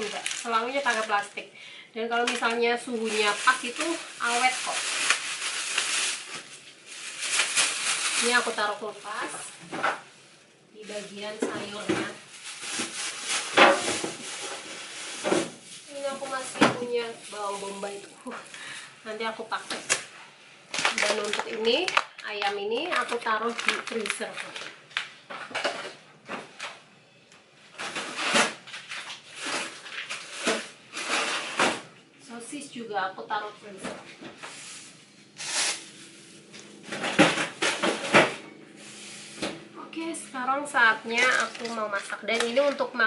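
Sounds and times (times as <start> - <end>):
plastic bag rustling: 0.0 - 20.1, 20.7 - 25.9, 27.7 - 31.8, 33.6 - 39.8, 40.5 - 43.0.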